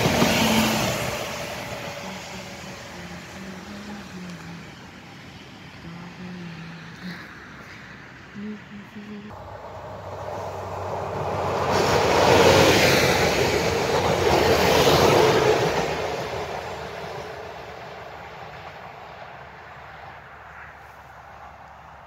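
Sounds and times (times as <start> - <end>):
diesel train passing: 0.0 - 22.0.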